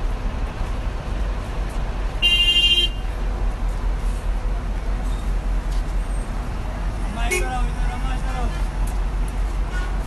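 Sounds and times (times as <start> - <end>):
idling buses and street traffic: 0.0 - 10.0.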